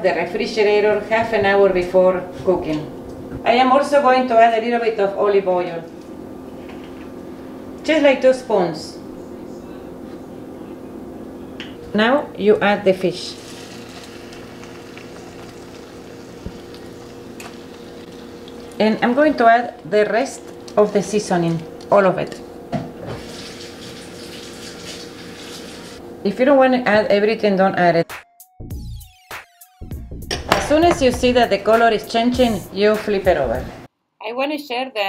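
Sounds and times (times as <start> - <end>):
low background hum: 0.0 - 28.0, 30.3 - 35.0
fish sizzling in frying pan: 13.2 - 18.8.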